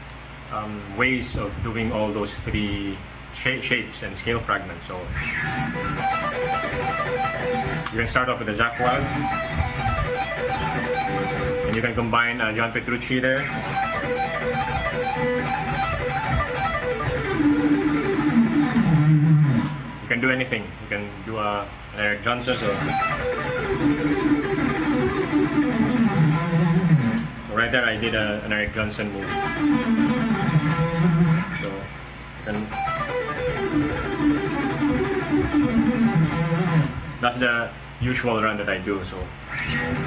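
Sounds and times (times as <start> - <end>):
electric guitar fast run: 13.4 - 20.0, 22.6 - 27.4, 32.7 - 37.2.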